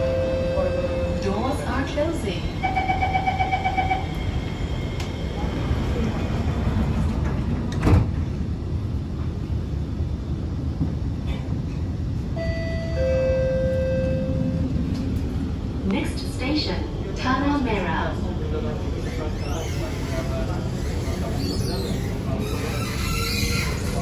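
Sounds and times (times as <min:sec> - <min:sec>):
train door chime beeping: 0:00.0 - 0:01.4, 0:02.6 - 0:04.2, 0:12.3 - 0:14.8
train cabin hum: 0:00.0 - 0:19.0.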